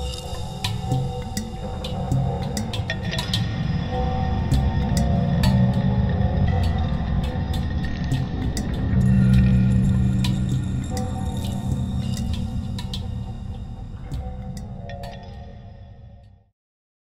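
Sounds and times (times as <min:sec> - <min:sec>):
steady tones: 0:00.0 - 0:15.7
low sustained drone: 0:00.0 - 0:16.2.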